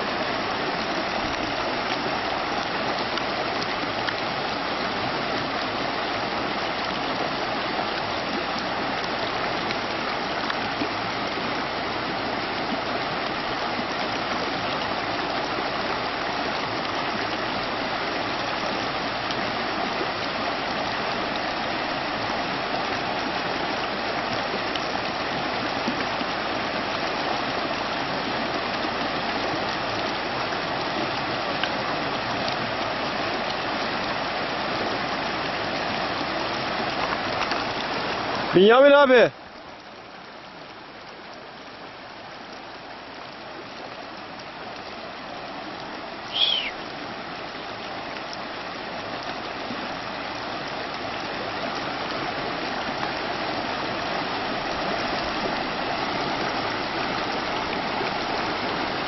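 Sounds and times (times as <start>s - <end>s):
stream rushing over stones: 0.0s - 59.0s.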